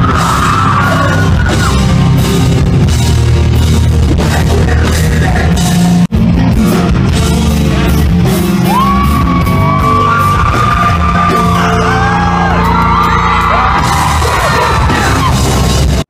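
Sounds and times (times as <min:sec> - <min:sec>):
vocalists yelling and singing: 0:00.0 - 0:02.3, 0:04.0 - 0:16.0
live rock band playing: 0:00.0 - 0:16.0.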